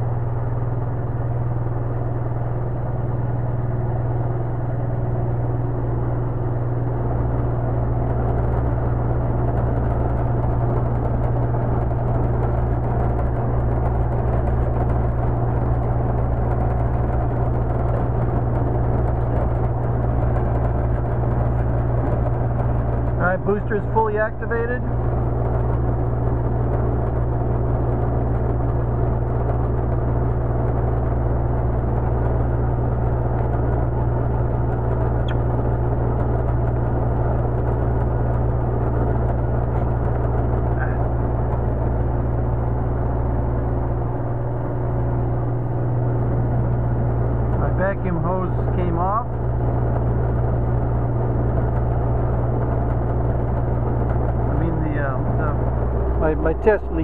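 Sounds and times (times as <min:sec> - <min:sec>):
mechanical hum with low drone: 0:00.0 - 0:57.0.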